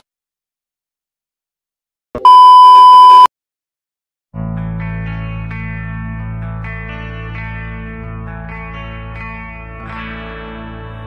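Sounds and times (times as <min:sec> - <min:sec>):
high-pitched test tone beep: 0:02.2 - 0:03.3.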